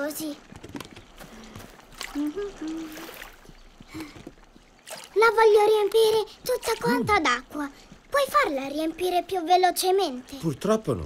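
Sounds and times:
water trickling from a hose: 0:00.0 - 0:11.0.

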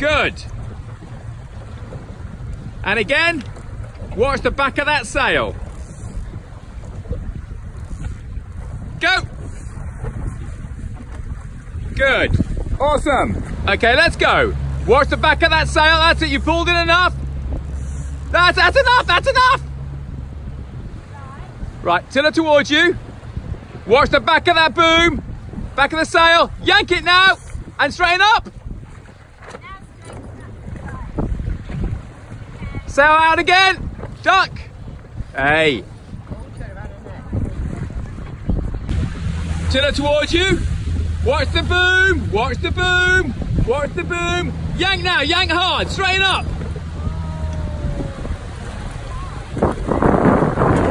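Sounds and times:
water moving around boats: 0:00.0 - 0:50.9
wind buffeting microphone: 0:00.0 - 0:50.9
steady low rumble: 0:36.3 - 0:50.9.

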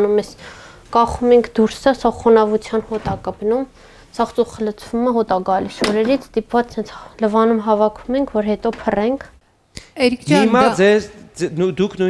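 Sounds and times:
woman speaking: 0:00.0 - 0:10.8.

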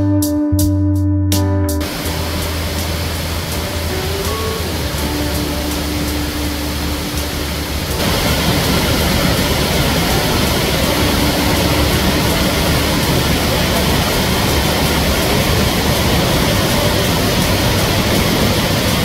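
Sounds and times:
waterfall rushing: 0:01.8 - 0:19.0.

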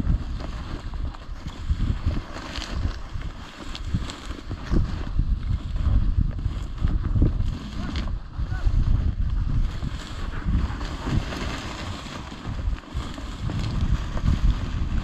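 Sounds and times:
dry grass rustling: 0:00.0 - 0:15.0
wind buffeting microphone: 0:00.0 - 0:15.0.

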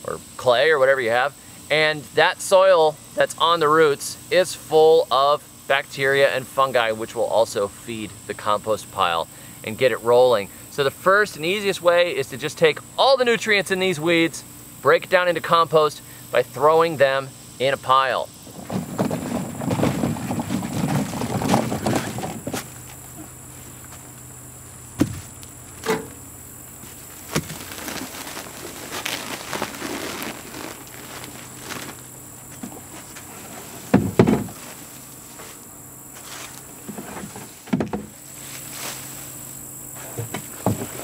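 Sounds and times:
insects buzzing: 0:00.0 - 0:41.0
sharp knocks and thumps: 0:18.5 - 0:23.3, 0:25.0 - 0:26.2, 0:33.9 - 0:34.6, 0:36.8 - 0:38.2, 0:40.1 - 0:41.0
handling noise: 0:18.5 - 0:35.6
footsteps: 0:18.6 - 0:26.2, 0:26.8 - 0:37.5.

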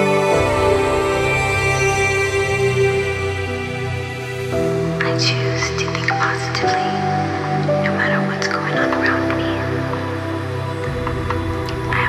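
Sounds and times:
calm background music: 0:00.0 - 0:12.0.

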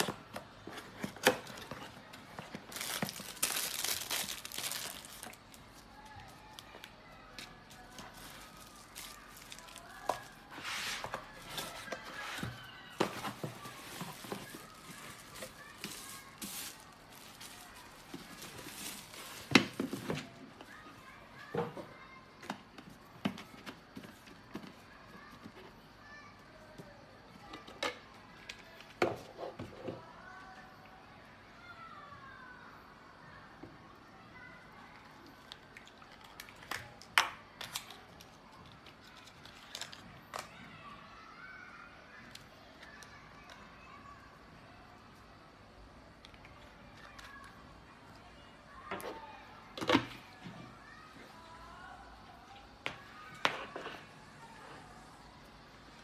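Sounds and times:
handling cardboard and paper: 0:00.0 - 0:25.8
plastic packaging crinkling: 0:01.2 - 0:10.6, 0:11.2 - 0:20.0, 0:37.6 - 0:40.5.

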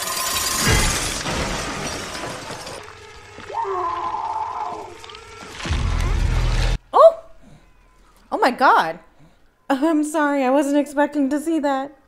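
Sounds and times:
wavering horror soundtrack tone: 0:00.0 - 0:06.8.

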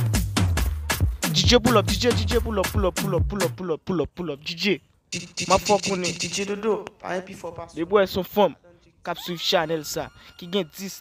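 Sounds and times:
man shouting hype calls: 0:05.2 - 0:06.7, 0:09.0 - 0:11.0.

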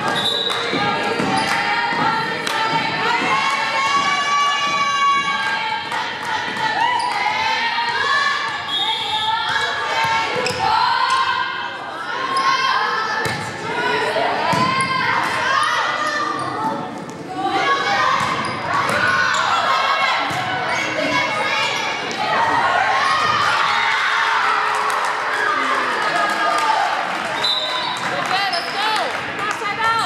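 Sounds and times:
crowd shouting and cheering: 0:00.0 - 0:30.0.

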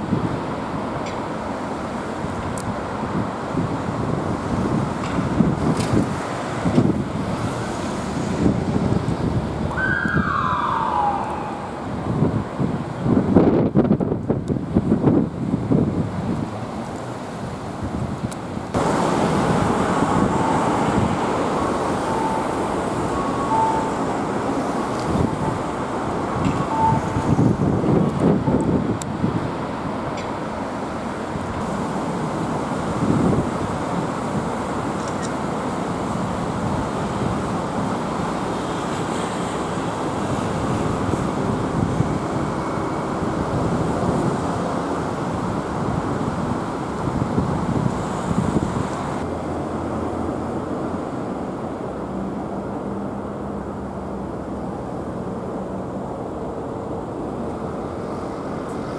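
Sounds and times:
road traffic passing: 0:00.0 - 0:58.9
short falling siren note: 0:09.7 - 0:12.0.

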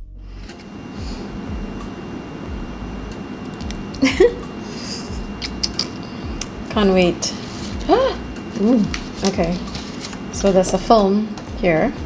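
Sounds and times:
faint music beat of low thuds: 0:00.0 - 0:12.0
low rumble: 0:02.5 - 0:04.4.

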